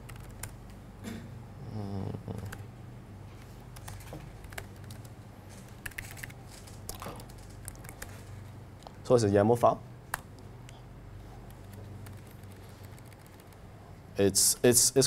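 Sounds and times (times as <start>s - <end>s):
laptop keyboard clicking: 0.0s - 0.6s, 3.8s - 5.1s, 5.7s - 8.2s, 11.5s - 13.6s
low electrical hum: 0.0s - 15.0s.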